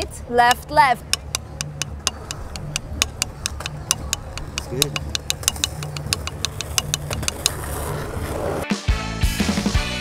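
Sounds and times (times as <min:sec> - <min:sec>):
drumsticks tapping: 0:00.5 - 0:07.6
background music: 0:08.4 - 0:10.0.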